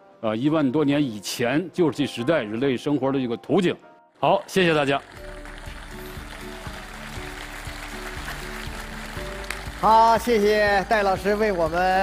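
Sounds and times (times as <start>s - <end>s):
background music: 0.0s - 12.0s
audience applause: 4.4s - 12.0s
man's voice: 9.8s - 12.0s.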